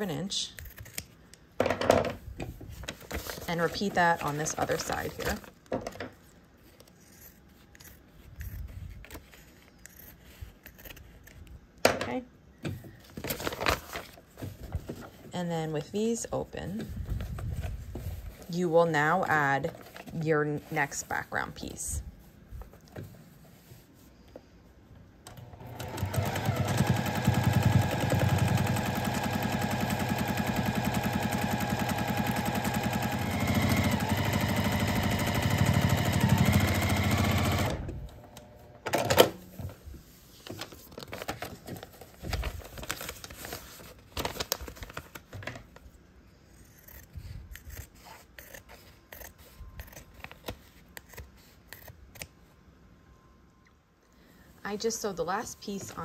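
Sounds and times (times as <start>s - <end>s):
sewing machine stitching: 25.3s - 38.1s.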